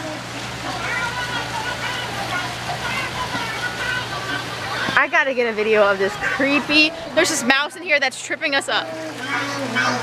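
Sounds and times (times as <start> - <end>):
faint voices: 0.0 - 10.0
running water rushing: 0.0 - 10.0.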